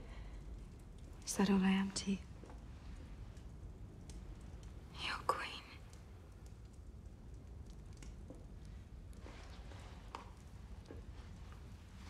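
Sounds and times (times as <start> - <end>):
person whispering: 5.0 - 5.8.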